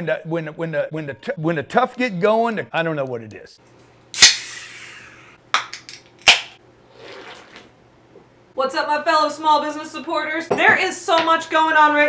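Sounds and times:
beer can cracked open: 4.2s - 4.7s, 5.6s - 6.6s
carbonation hissing: 4.2s - 5.3s.

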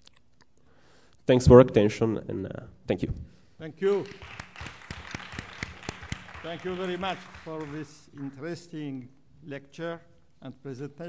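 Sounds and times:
audience applauding: 3.8s - 8.6s.

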